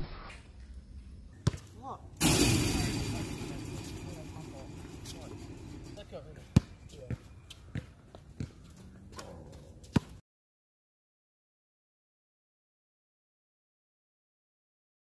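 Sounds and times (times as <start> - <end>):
basketball bouncing on asphalt: 1.3 - 1.7, 6.4 - 10.2.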